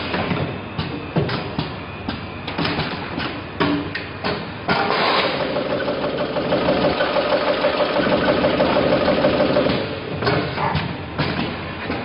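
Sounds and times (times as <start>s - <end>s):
packing machine rattling and humming: 0.0s - 12.0s.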